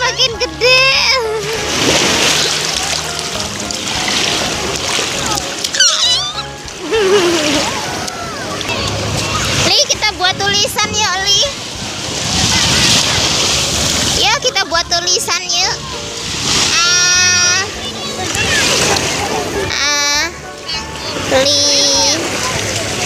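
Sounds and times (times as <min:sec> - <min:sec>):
children calling and shouting: 0:00.0 - 0:23.0
surf splashing at shore: 0:01.0 - 0:23.0.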